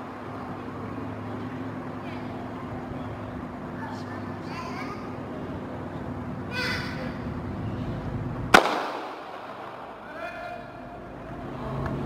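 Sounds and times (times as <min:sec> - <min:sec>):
starter's gun crack: 0:08.6 - 0:09.8.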